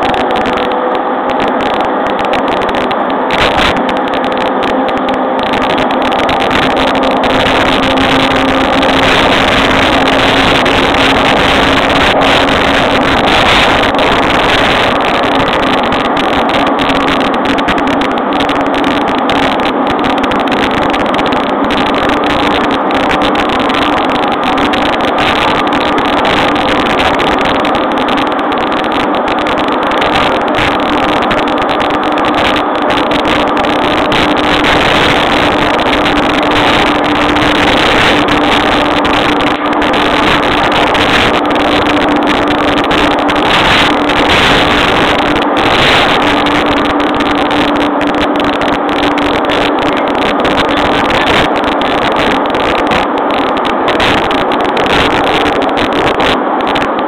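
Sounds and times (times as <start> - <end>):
train motor hum: 0.0 - 57.0
train wheels rumbling on rail: 0.0 - 57.0.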